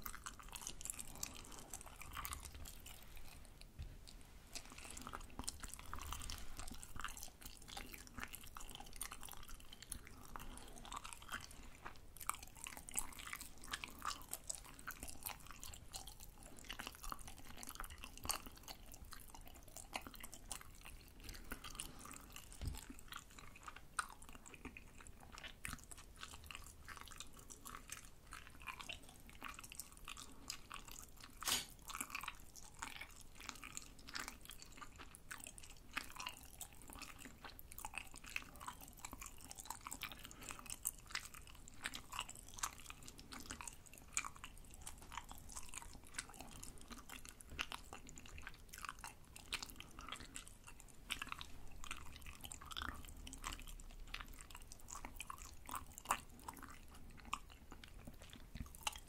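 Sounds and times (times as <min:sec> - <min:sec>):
chewing crunchy food: 0:00.0 - 0:59.0.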